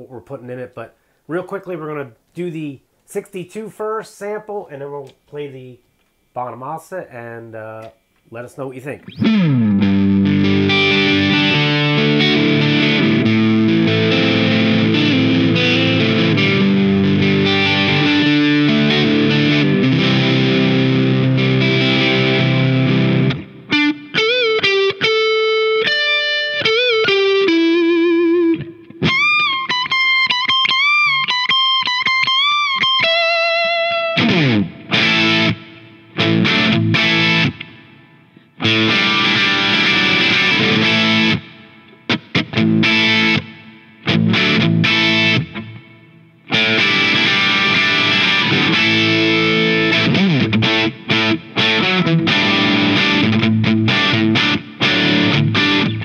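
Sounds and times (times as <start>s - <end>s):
overdriven electric guitar: 9.0s - 56.0s.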